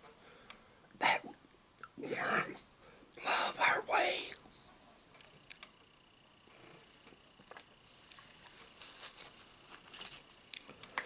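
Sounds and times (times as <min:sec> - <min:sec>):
man whispering: 0:01.0 - 0:01.4, 0:02.0 - 0:04.4.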